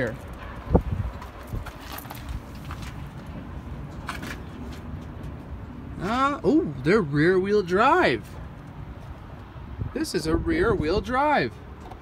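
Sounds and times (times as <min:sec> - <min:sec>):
footsteps on gravel: 0:00.2 - 0:03.4.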